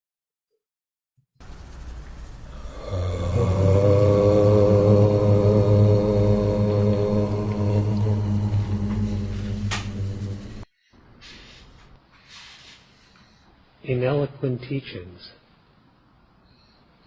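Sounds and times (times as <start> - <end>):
low droned chant: 2.4 - 10.7.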